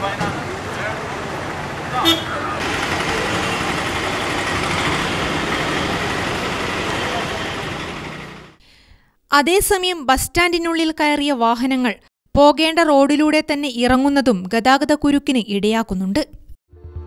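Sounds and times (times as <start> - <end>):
traffic noise: 0.0 - 8.6.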